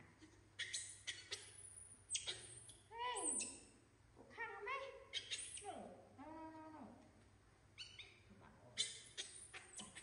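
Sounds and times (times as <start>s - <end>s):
baby monkeys squealing: 0.6s - 3.7s, 5.1s - 5.7s, 7.8s - 10.0s.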